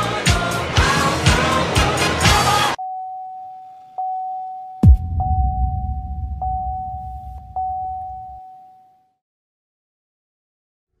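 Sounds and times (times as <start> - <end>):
deep boom with rumble: 4.8 - 8.4
steady high tone: 4.8 - 8.4.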